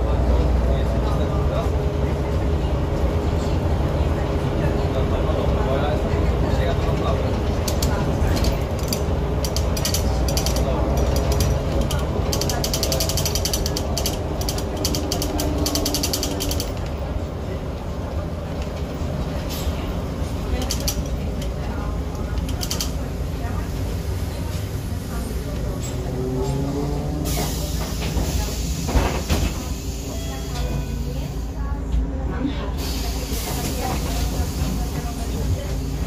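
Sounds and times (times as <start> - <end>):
bus engine drone: 0.0 - 36.0
rattling of bus body: 0.0 - 36.0.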